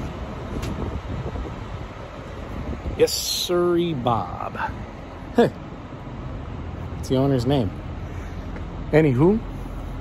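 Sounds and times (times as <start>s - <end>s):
wind buffeting microphone: 0.0s - 3.3s.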